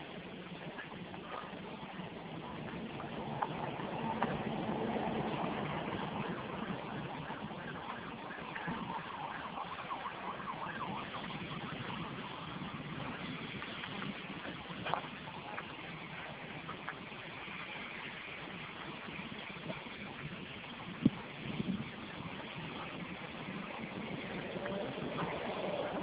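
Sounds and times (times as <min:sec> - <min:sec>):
outdoor noise rushing: 0:00.0 - 0:26.0
faint siren wailing: 0:02.6 - 0:14.2, 0:21.9 - 0:26.0.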